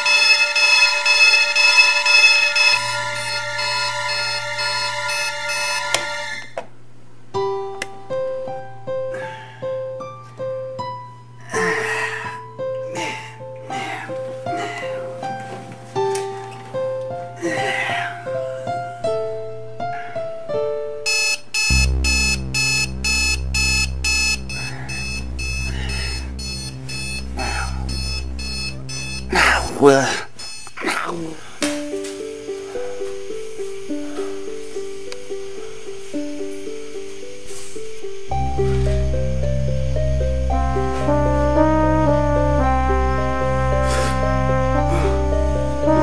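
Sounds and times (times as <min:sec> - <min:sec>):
alarm clock pulsing buzz: 0:00.0 - 0:06.6, 0:21.0 - 0:30.8
steady low drone: 0:21.7 - 0:29.9, 0:38.3 - 0:46.0.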